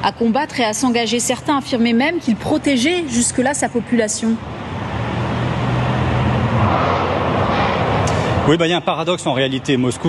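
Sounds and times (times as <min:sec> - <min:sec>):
street traffic with engine hum: 0:00.0 - 0:10.0.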